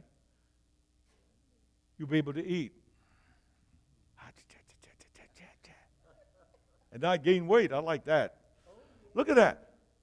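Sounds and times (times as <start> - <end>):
faint voice whispering: 4.2 - 6.9.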